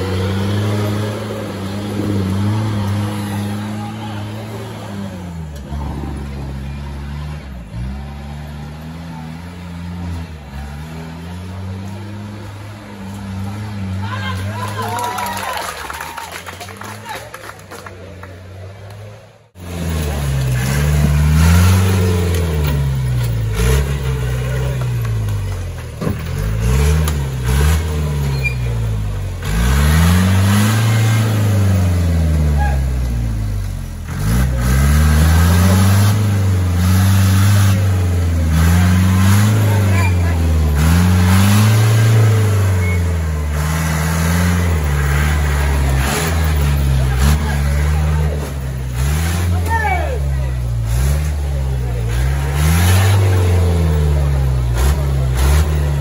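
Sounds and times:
jeep engine revving: 0:00.0 - 0:15.0, 0:18.0 - 0:56.0
spectators' voices: 0:00.0 - 0:29.7, 0:30.5 - 0:56.0.

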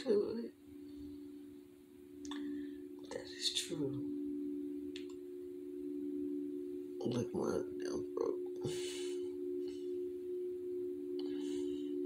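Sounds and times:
pure-tone drone: 0:00.0 - 0:12.0.

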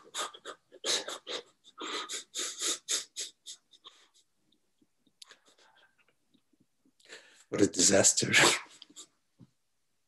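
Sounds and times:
man's breathy laughter: 0:00.0 - 0:04.3.

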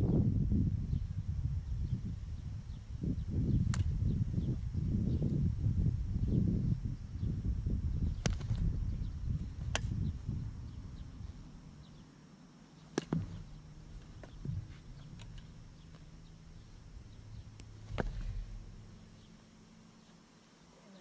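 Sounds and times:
low rumble: 0:13.1 - 0:20.0.

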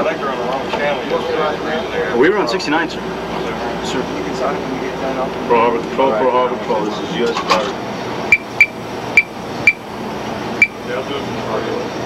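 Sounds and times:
murmur of voices: 0:00.0 - 0:08.4, 0:10.4 - 0:12.0.

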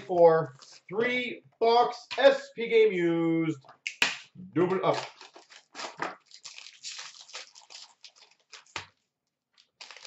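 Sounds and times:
wrappers crinkling and tearing: 0:04.9 - 0:10.0.

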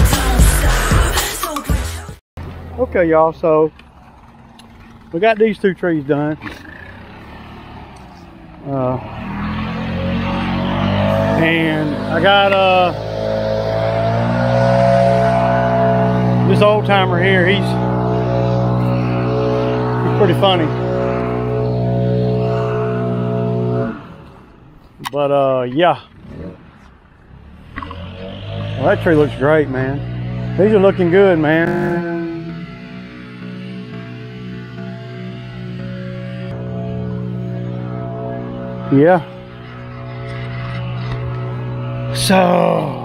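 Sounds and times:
man humming a low note: 0:10.5 - 0:24.5, 0:28.7 - 0:43.0.

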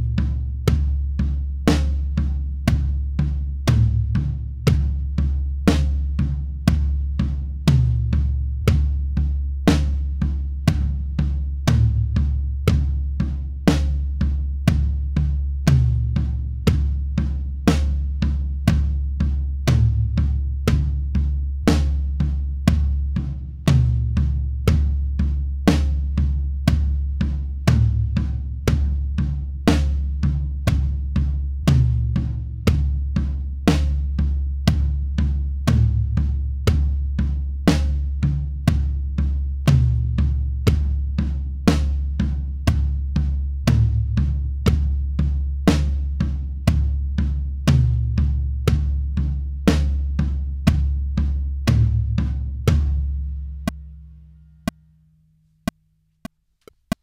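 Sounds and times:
rack tom strikes: 0:00.0 - 0:54.0
drum kit groove: 0:00.0 - 0:54.8.

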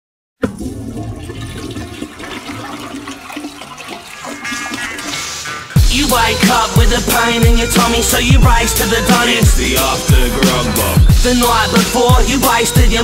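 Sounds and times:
toilet flushing: 0:00.4 - 0:07.0
hip hop beat with kick drums: 0:05.1 - 0:13.0.

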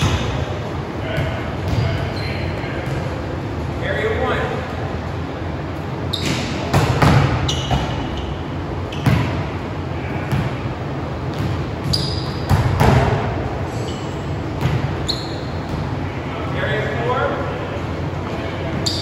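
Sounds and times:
sneaker squeaks: 0:00.0 - 0:03.2, 0:06.0 - 0:09.5, 0:11.3 - 0:16.1, 0:18.7 - 0:19.0
volleyball slaps and bounces: 0:06.2 - 0:08.1, 0:09.0 - 0:09.5, 0:10.2 - 0:10.6, 0:11.3 - 0:13.3, 0:14.5 - 0:15.0.

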